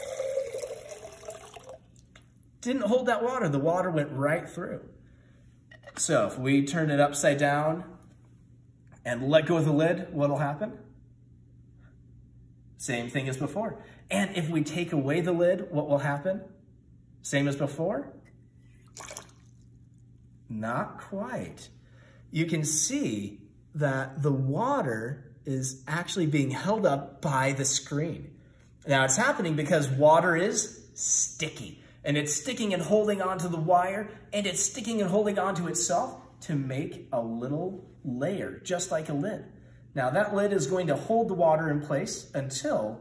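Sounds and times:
water pouring into glass jar: 0.0s - 2.2s, 18.8s - 20.0s
low steady hum: 0.0s - 43.0s
water drops splashing into tub: 18.8s - 19.7s.

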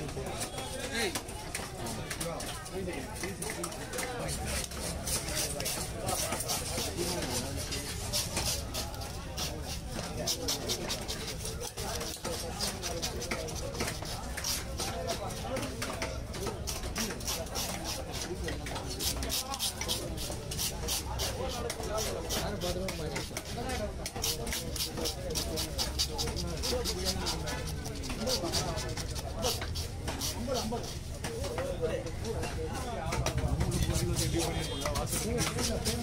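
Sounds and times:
voices chattering: 0.0s - 36.0s
knife scraping fish scales: 4.2s - 15.0s, 16.6s - 31.6s, 33.6s - 36.0s.

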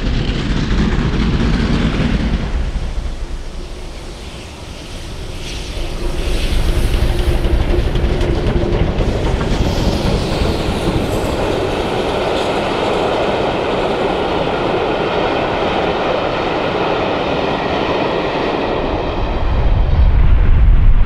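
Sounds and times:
train coaches rolling on rails: 0.0s - 19.4s
rhythmic wheel clatter: 5.1s - 15.0s
deep rumble: 19.1s - 21.0s.

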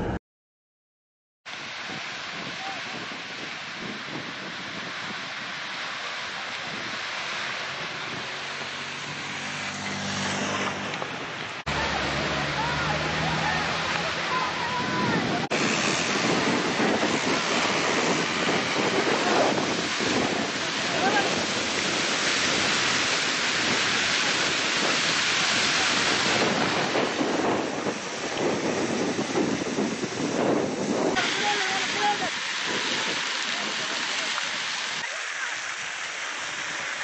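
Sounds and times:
fire rushing: 1.5s - 37.0s
wind on microphone: 1.5s - 37.0s.

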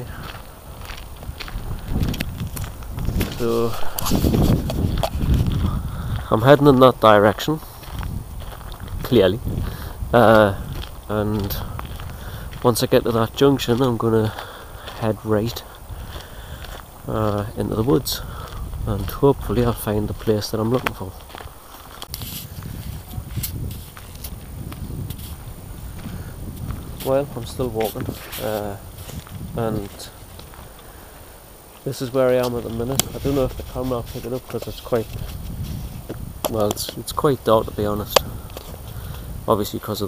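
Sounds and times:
footsteps on dirt: 0.0s - 39.7s
wind buffeting microphone: 0.0s - 40.0s.

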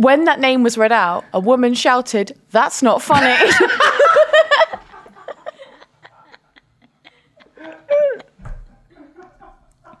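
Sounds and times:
person squealing with laughter: 7.1s - 8.4s.

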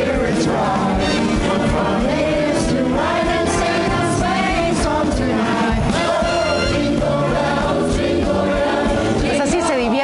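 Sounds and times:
group singing over a beat: 0.0s - 10.0s.

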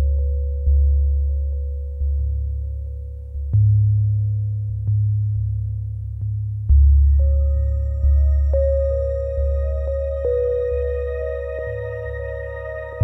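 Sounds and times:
deep bass pulse: 0.0s - 13.0s
steady high tone: 7.2s - 13.0s.

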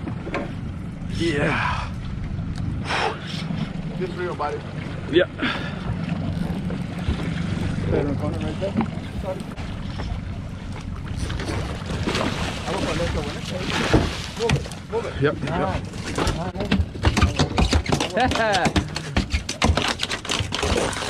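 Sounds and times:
outboard motors idling: 0.0s - 21.0s.

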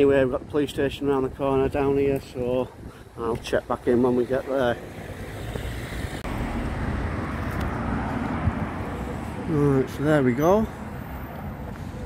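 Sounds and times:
cars passing on road: 2.7s - 12.0s.

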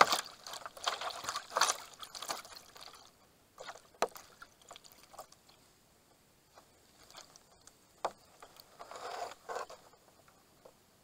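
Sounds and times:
water splashes: 0.0s - 5.6s.

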